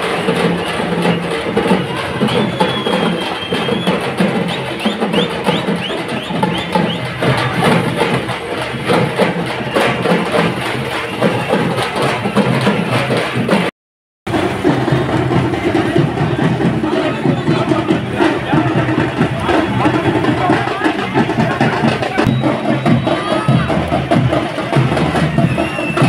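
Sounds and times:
rhythmic drumming and percussion: 0:00.0 - 0:13.7, 0:14.3 - 0:26.0.

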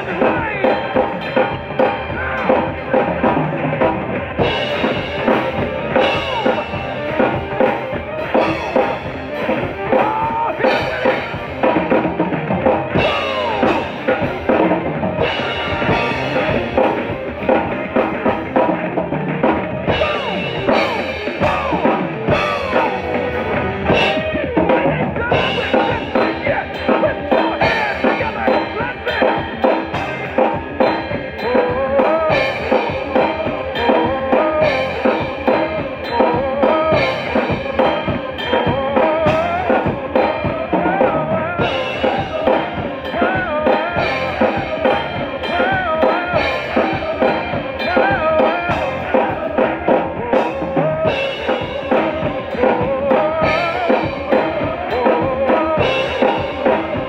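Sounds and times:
acoustic drum kit groove: 0:00.0 - 0:57.0
recorded gospel song: 0:00.0 - 0:57.0.

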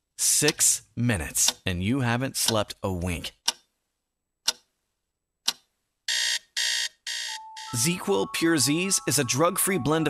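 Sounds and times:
clock tick: 0:00.4 - 0:01.7, 0:02.4 - 0:03.7, 0:04.4 - 0:04.7, 0:05.4 - 0:05.7
alarm clock beeping: 0:06.1 - 0:10.0.

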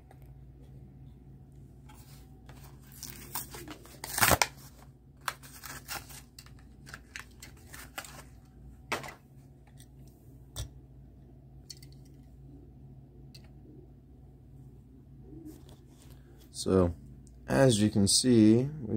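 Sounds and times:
packaging rustles: 0:02.0 - 0:09.1
cardboard and plastic tearing: 0:02.7 - 0:08.4.

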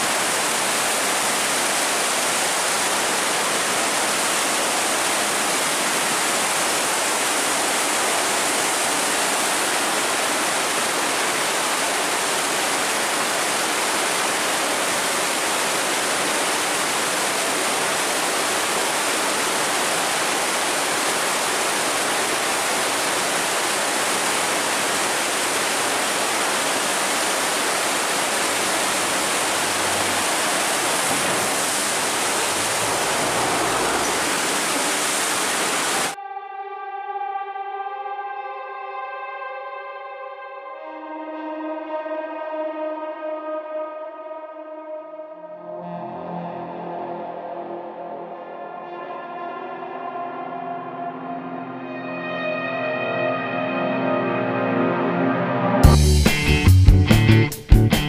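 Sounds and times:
water rushing through sluice gate: 0:00.0 - 0:36.2.

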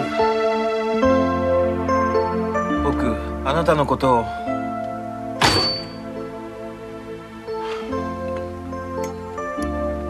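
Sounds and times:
high ringing ping: 0:05.4 - 0:06.1.

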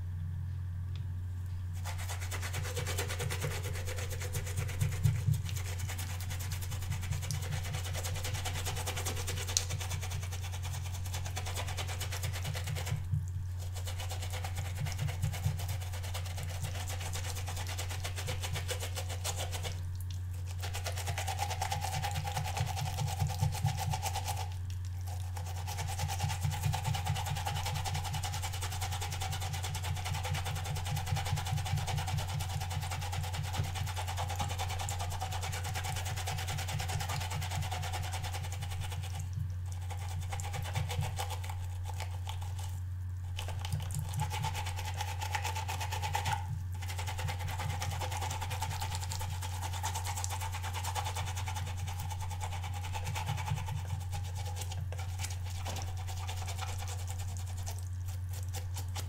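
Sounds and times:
steady low hum: 0:00.0 - 0:59.0
brush scrubbing on silicone pad: 0:01.8 - 0:59.0.

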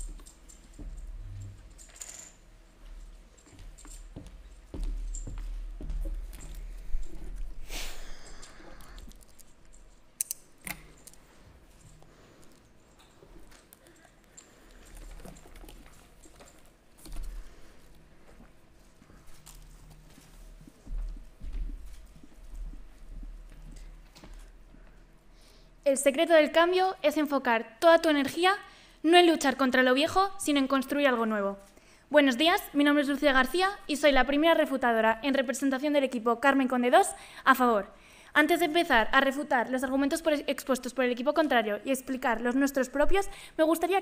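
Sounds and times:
footsteps on wooden floor: 0:02.9 - 0:07.4, 0:20.0 - 0:24.5.

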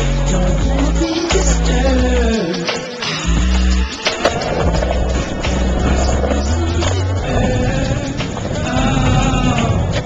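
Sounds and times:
music with deep bass line: 0:00.0 - 0:10.0
skateboard wheels rolling on concrete: 0:03.4 - 0:10.0
sharp skateboard clack: 0:04.0 - 0:07.0.

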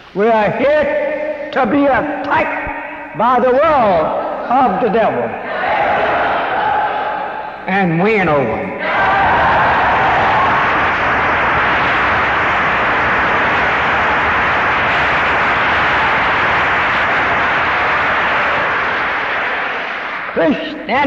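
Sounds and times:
large audience applauding: 0:09.0 - 0:20.8.

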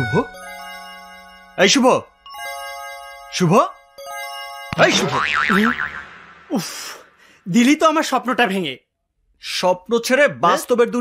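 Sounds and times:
soft chime-like music: 0:00.0 - 0:04.9
warbling comic sound effect: 0:04.7 - 0:07.2.

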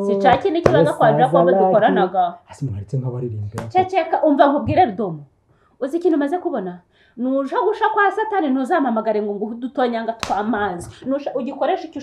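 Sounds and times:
people talking: 0:00.0 - 0:05.2, 0:05.8 - 0:12.0.

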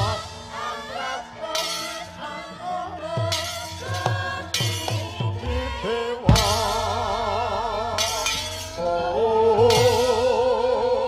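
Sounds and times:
gamelan ensemble playing: 0:00.0 - 0:11.0
metallic crash: 0:07.9 - 0:09.0.

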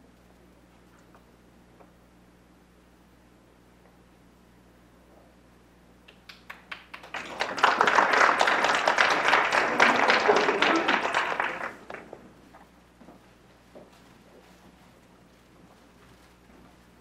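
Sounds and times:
audience applauding: 0:06.3 - 0:12.3.

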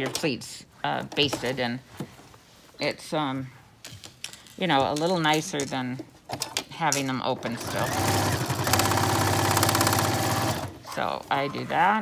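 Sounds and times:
sewing machine stitching: 0:07.4 - 0:10.8.

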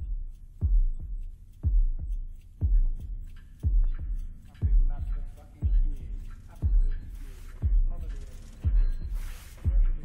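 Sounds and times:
deep heartbeat thumps: 0:00.0 - 0:10.0.

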